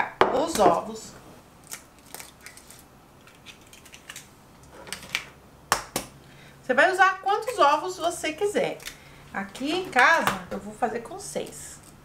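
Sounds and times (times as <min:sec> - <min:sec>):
eggshell crackling: 0:01.6 - 0:04.7.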